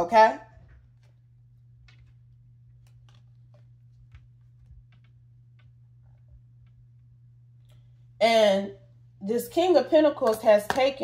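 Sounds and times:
low hum: 0:00.4 - 0:10.1
cards ticking and tapping on table: 0:02.8 - 0:05.8.

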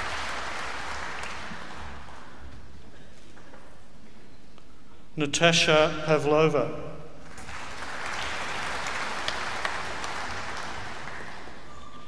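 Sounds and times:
audience applauding: 0:00.0 - 0:02.4, 0:07.3 - 0:12.0.

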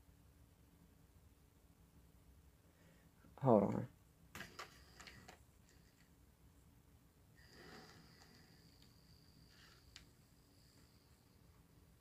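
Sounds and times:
faint model train motor whine: 0:07.4 - 0:11.9.

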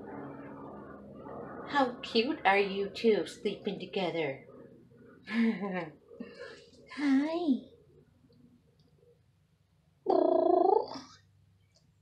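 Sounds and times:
cat purring: 0:10.1 - 0:11.1.

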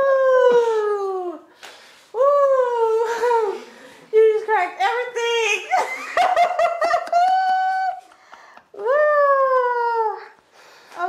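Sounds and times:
woman laughing: 0:05.7 - 0:09.6
woman exclaiming: 0:08.8 - 0:10.3.

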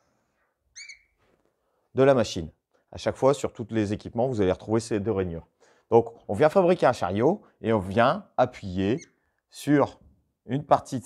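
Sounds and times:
marker squeaking on whiteboard: 0:00.7 - 0:01.2, 0:08.8 - 0:09.2.

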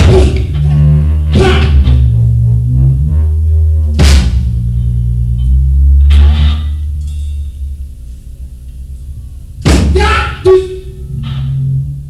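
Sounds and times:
noisy rock music with bass drone: 0:00.0 - 0:12.0.

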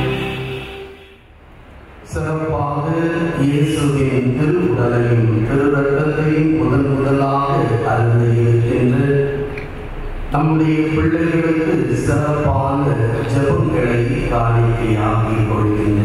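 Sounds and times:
priest chanting into a microphone: 0:10.4 - 0:16.0.

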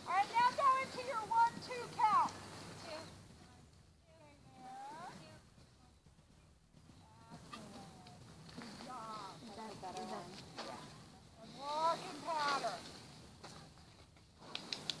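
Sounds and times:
sharp clicks: 0:14.4 - 0:15.0.

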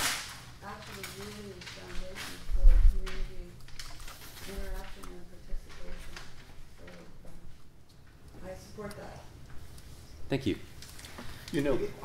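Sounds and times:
paper sheet snapping: 0:00.0 - 0:02.4.

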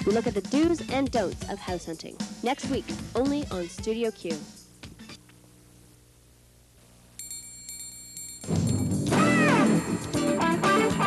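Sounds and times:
high bright chiming tones: 0:07.2 - 0:10.4.

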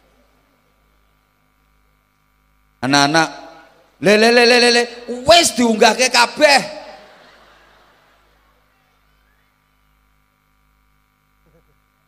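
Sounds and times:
faint electrical hum: 0:00.0 - 0:12.0
amplified man's voice echoing: 0:02.8 - 0:07.0.

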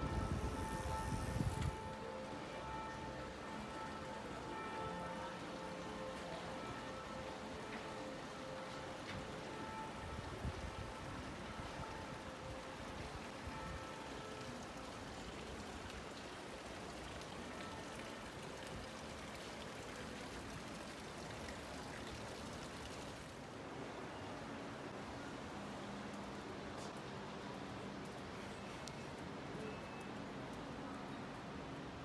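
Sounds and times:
fountain water splashing into basin: 0:13.5 - 0:23.4.

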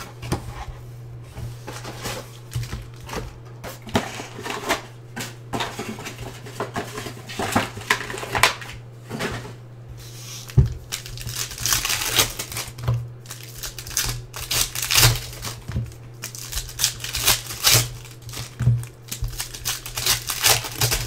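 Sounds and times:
foil wrapper crinkling and tearing: 0:10.8 - 0:21.0.

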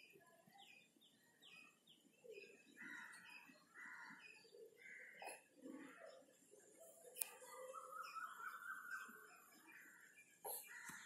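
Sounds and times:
faint bird chirping: 0:00.0 - 0:11.0.

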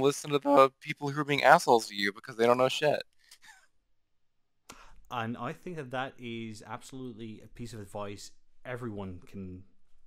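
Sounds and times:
faint breath: 0:04.7 - 0:05.1.

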